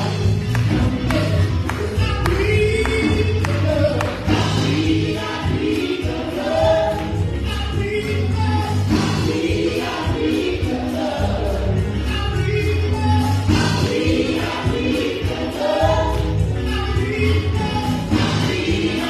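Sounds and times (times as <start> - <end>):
group singing gospel: 0.0 - 19.0
instrumental backing with bass: 0.0 - 19.0.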